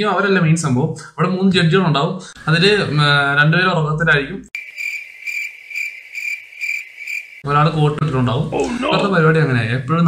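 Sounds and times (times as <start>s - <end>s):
man talking: 0.0s - 4.5s, 7.4s - 10.0s
cricket chirping effect: 4.6s - 7.5s.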